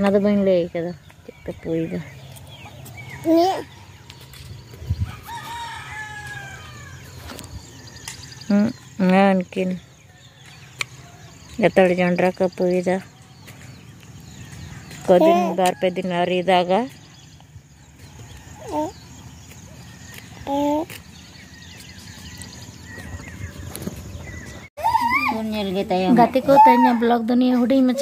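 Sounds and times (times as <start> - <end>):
rooster crowing: 5.1 - 7.0.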